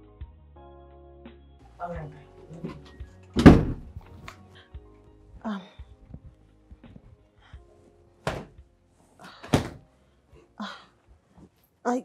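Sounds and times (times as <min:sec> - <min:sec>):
soft background music: 0:00.0 - 0:12.0
loud thump: 0:03.4 - 0:04.0.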